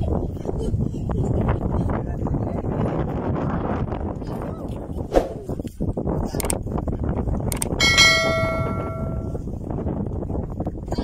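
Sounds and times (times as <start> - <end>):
bell ringing: 7.8 - 9.4.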